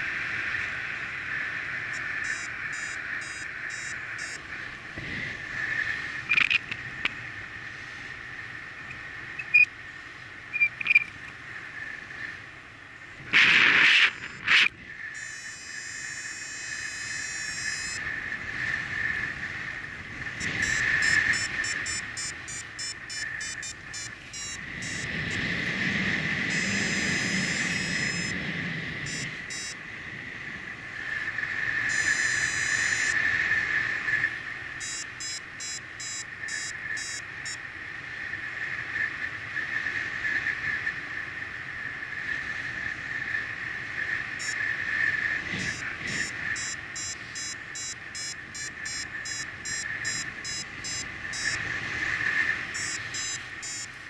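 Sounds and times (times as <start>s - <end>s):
wind gusts buffeting: 0.0s - 15.3s, 16.0s - 35.2s, 36.3s - 54.0s
wind rushing over microphone: 0.0s - 35.6s, 36.3s - 54.0s
rapid electronic beeping: 1.9s - 4.4s, 14.3s - 18.0s, 20.4s - 25.4s, 26.5s - 28.4s, 29.1s - 29.8s, 31.9s - 33.2s, 34.8s - 37.6s, 44.4s - 44.6s, 45.6s - 51.6s, 52.8s - 54.0s.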